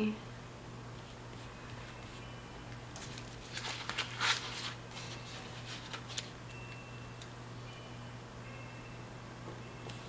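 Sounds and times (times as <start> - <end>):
steady low hum: 0.0 - 10.0
paper rustling: 2.9 - 6.4.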